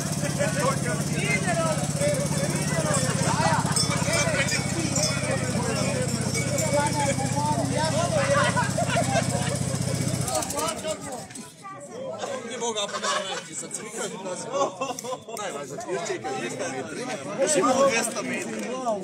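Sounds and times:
small engine idling: 0:00.0 - 0:11.5
people chatting: 0:00.0 - 0:19.0.

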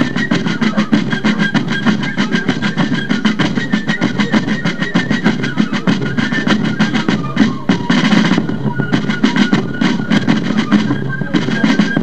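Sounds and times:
high fife melody: 0:00.0 - 0:12.0
rapid drum strokes: 0:00.0 - 0:12.0.

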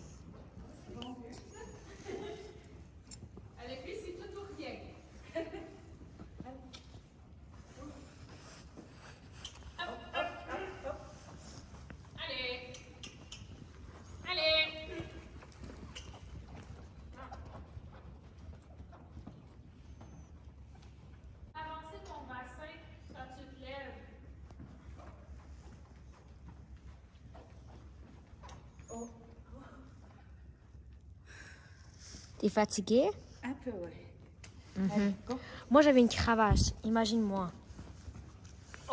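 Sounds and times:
horse hoofbeats on sand: 0:09.7 - 0:29.0.

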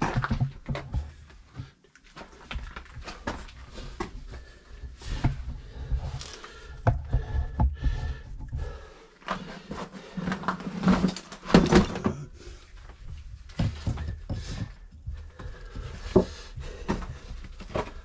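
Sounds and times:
person clambering over rock: 0:00.0 - 0:18.0.

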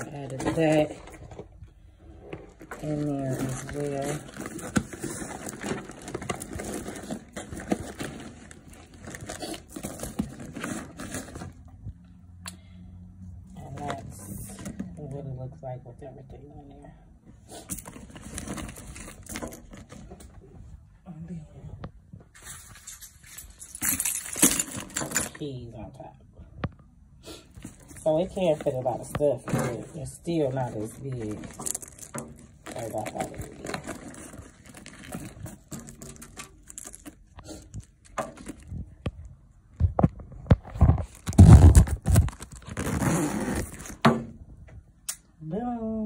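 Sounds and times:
rustling of items in bag: 0:00.0 - 0:11.8, 0:17.4 - 0:20.8, 0:22.3 - 0:25.4, 0:27.4 - 0:39.3, 0:39.9 - 0:44.0
keys clattering into bag: 0:22.4 - 0:25.4, 0:31.2 - 0:38.6
zipper closing: 0:41.1 - 0:44.0.

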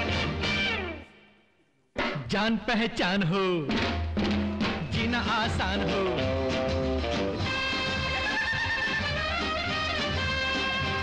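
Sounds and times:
upbeat dance band music: 0:00.0 - 0:01.2, 0:03.7 - 0:11.0.

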